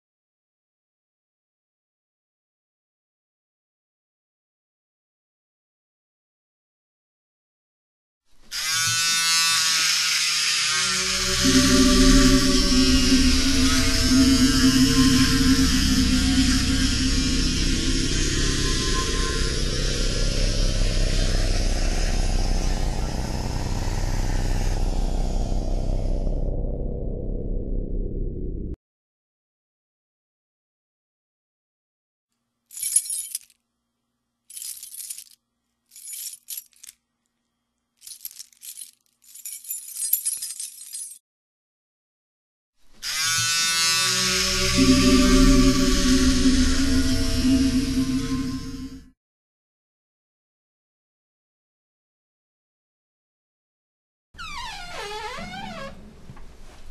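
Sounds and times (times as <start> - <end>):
mechanical drone and hiss: 11.1 - 26.4, 44.3 - 49.1
low hum: 11.3 - 28.8, 44.4 - 49.1.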